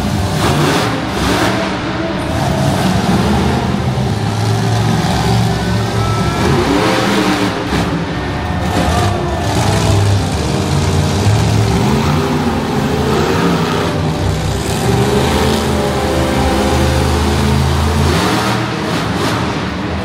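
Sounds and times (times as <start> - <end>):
monster truck engine revving: 0.0 - 20.0.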